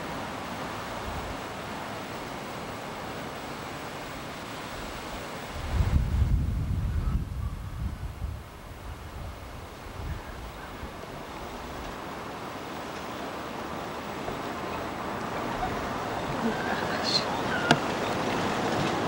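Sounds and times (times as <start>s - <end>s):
wind buffeting microphone: 5.5s - 12.6s.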